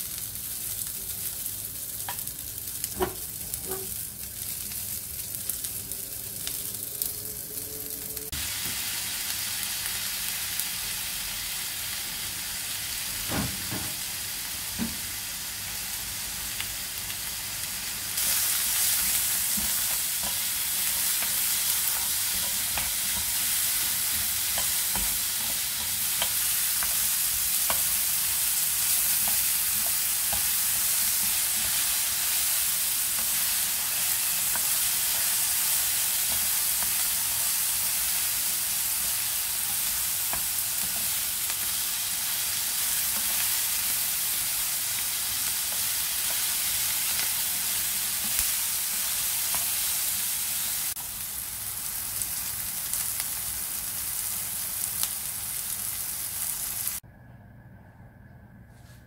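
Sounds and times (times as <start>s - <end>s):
vegetables sizzling in oil: 0.0s - 57.0s
spatula clicking and scraping pan: 19.5s - 28.0s.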